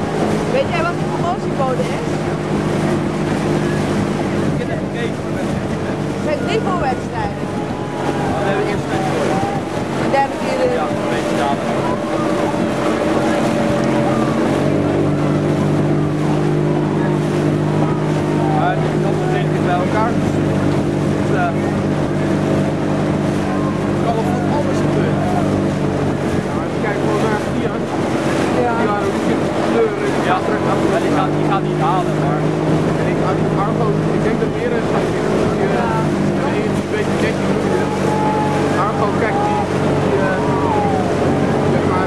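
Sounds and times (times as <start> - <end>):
motorboat engine droning: 0.0 - 42.0
voices calling: 0.0 - 42.0.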